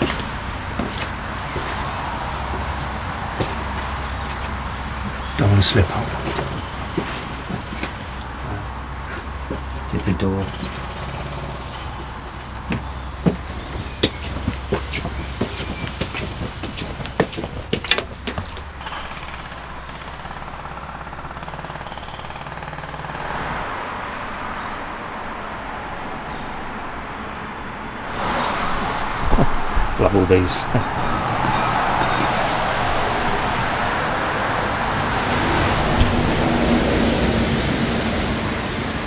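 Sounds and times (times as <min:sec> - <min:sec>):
passing cars hum: 0:00.0 - 0:39.0
sharp clicks and knocks: 0:12.7 - 0:20.2.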